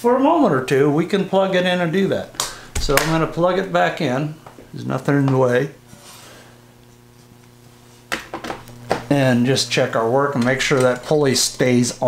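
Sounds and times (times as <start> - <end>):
sharp clicks and knocks: 2.4 - 3.6, 10.3 - 11.3.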